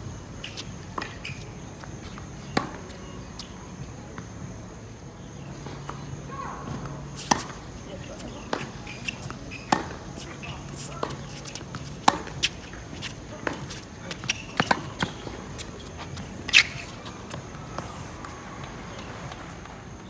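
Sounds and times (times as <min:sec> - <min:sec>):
rackets striking tennis ball: 0:06.7 - 0:19.8
ball bouncing on hard court: 0:13.4 - 0:18.0.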